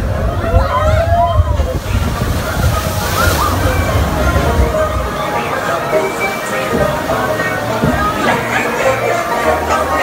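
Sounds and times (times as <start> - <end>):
steady low rumble: 0.0 - 5.9
water sloshing and rushing: 0.0 - 10.0.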